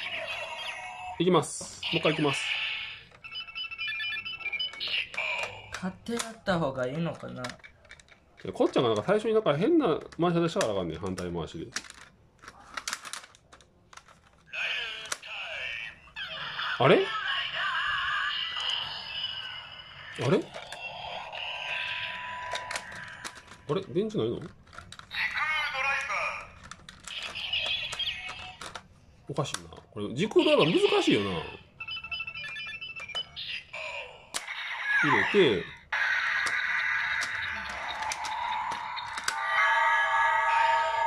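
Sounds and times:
toy belt electronic beeps: 1.9 - 5.8, 18.4 - 23.8, 27.1 - 28.7, 30.6 - 41.0.

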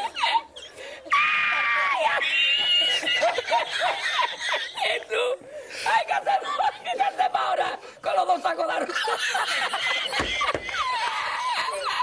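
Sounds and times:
man laughing in squealing wheezes: 0.0 - 5.0, 8.9 - 12.0.

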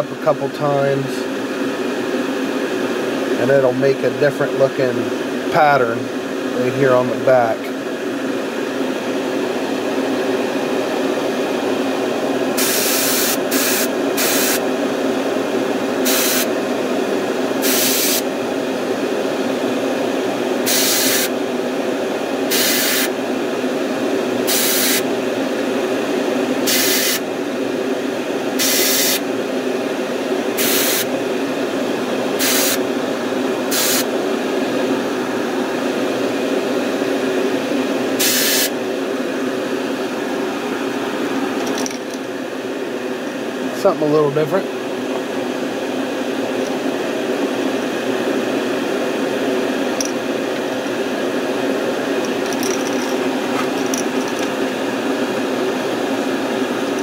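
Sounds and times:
steady hum: 0.0 - 57.0
airbrush spraying hiss: 12.6 - 14.6, 16.0 - 16.5, 17.6 - 18.2, 20.7 - 21.3, 22.5 - 23.1, 24.5 - 25.0, 26.7 - 27.2, 28.6 - 29.2, 30.6 - 31.1, 32.4 - 32.8, 33.7 - 34.1, 38.2 - 38.7.

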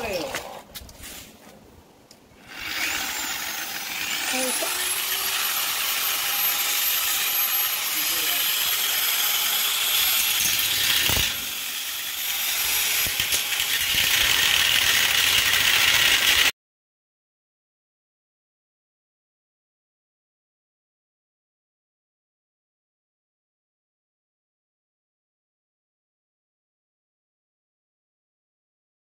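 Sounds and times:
angle grinder cutting steel: 2.4 - 16.5.

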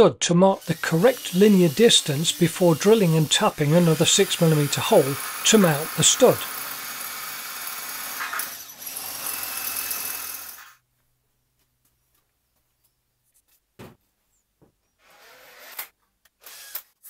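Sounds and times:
cordless drill boring into metal: 0.6 - 10.8, 15.1 - 17.0.

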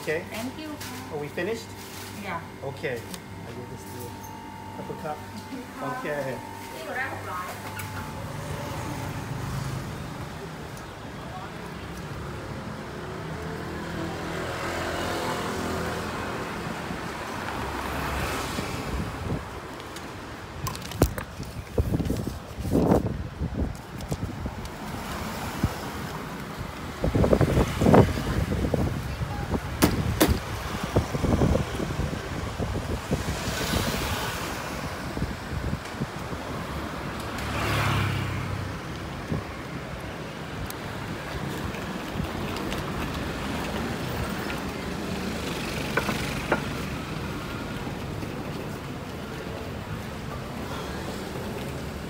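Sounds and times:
vehicles passing: 0.0 - 52.0
vehicle engine passing by: 37.4 - 38.8.

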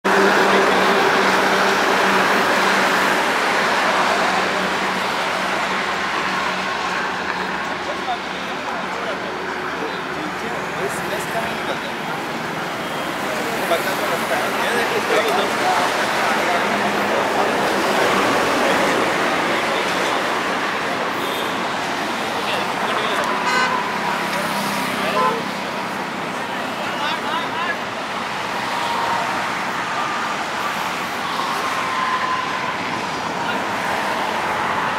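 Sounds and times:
road traffic engine hum: 0.0 - 34.9
vehicle horn: 23.2 - 24.1, 25.0 - 25.5.

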